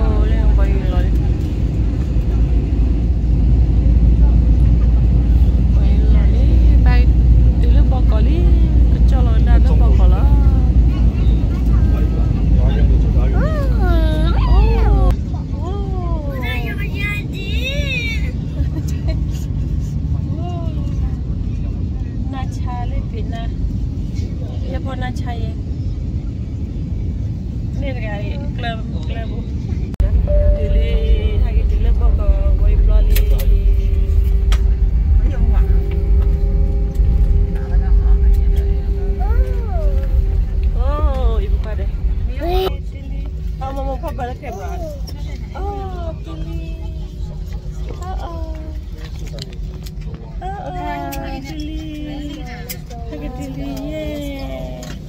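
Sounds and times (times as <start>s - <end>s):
airliner cabin rumble: 0.0s - 55.0s.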